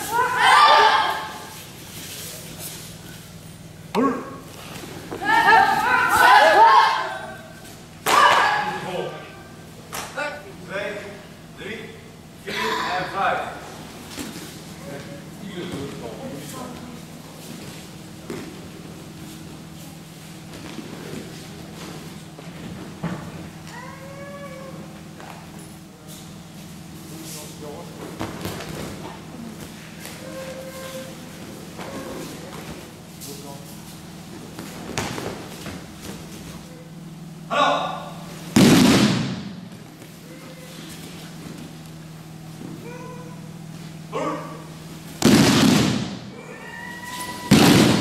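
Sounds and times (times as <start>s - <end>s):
bodies slapping mats: 20.3s - 23.8s, 27.9s - 30.5s, 34.3s - 36.7s, 38.4s - 40.2s, 45.0s - 46.3s, 47.2s - 48.0s
child's high vocal call: 42.8s - 43.4s.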